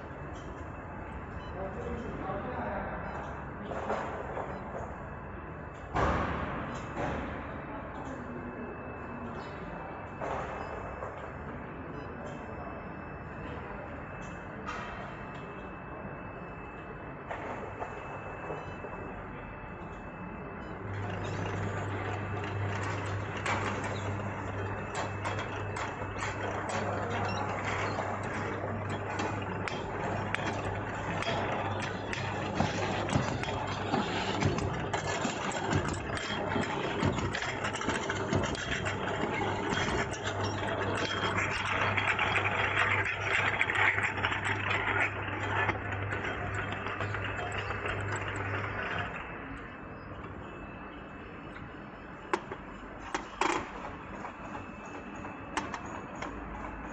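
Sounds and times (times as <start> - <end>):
machine motor hum: 17.3 - 56.9.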